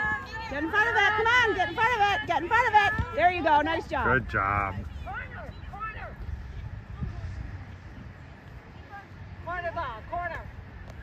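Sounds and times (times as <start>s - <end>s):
wind rumble on microphone: 2.9s - 11.0s.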